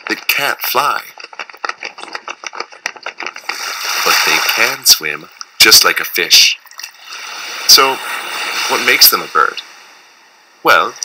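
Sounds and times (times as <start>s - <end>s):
rapid clicking rattle: 0.0s - 4.0s
water rushing: 3.4s - 11.0s.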